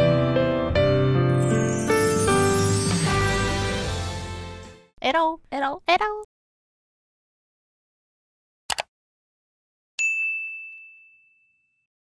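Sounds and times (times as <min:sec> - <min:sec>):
bright bell ding: 0:10.0 - 0:11.9.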